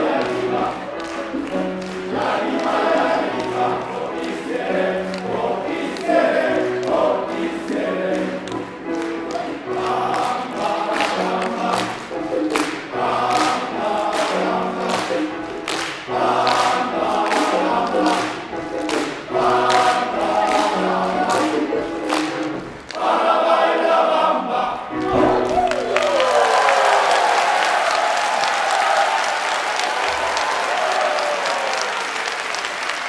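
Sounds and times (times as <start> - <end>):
men's choir singing: 0.0 - 8.7, 9.4 - 25.4
piano: 0.0 - 33.0.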